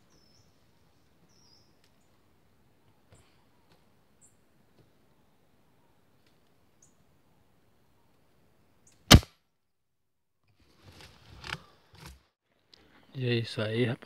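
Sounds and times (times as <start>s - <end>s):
faint bird chirps: 0.0s - 4.5s
rifle shot: 9.1s - 9.4s.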